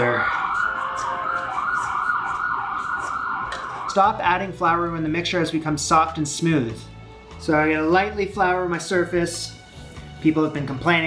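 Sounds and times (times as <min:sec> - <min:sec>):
emergency siren wailing: 0:00.0 - 0:04.2.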